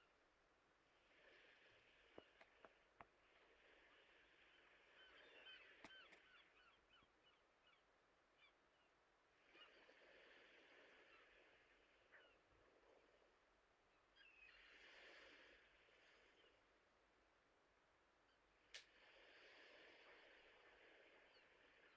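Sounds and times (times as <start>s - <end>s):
faint soft hissing: 0.0s - 7.8s, 8.4s - 21.9s.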